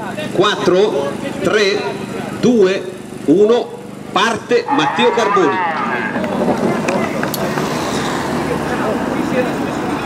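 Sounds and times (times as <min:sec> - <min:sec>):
car engine and tyre noise: 0:00.0 - 0:10.0
murmur of voices: 0:00.0 - 0:10.0.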